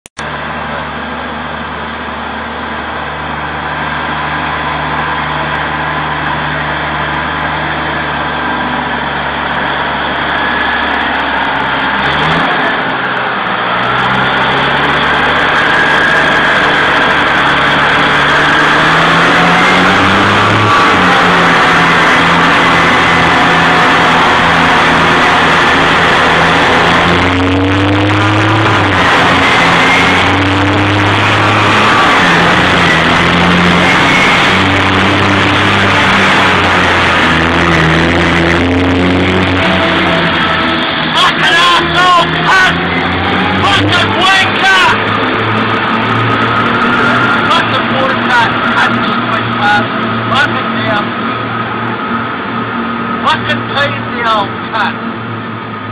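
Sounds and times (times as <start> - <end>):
truck diesel engine approaching: 0.1 - 55.9.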